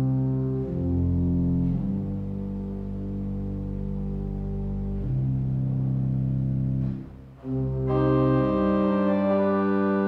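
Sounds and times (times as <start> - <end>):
pipe organ low sustained chord: 0.0 - 10.0.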